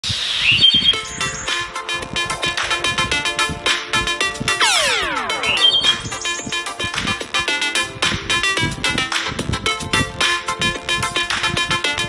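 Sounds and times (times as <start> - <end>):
bird chirping: 0.1 - 1.9, 5.0 - 6.9
upbeat electronic jingle: 0.6 - 12.0.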